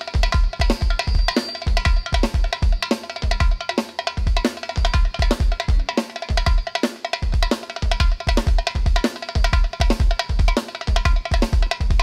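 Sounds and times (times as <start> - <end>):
fast drum-kit beat: 0.0 - 12.0.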